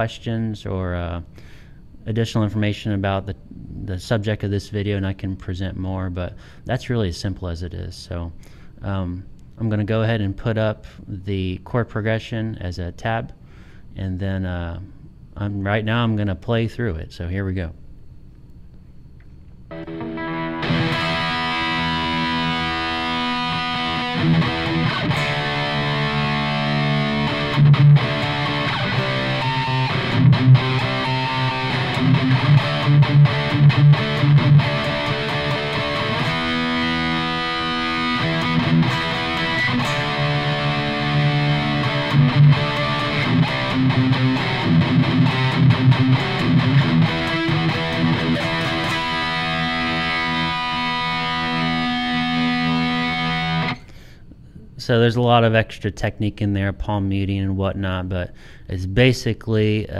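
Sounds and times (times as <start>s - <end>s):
distorted electric guitar chords: 19.7s - 54.0s.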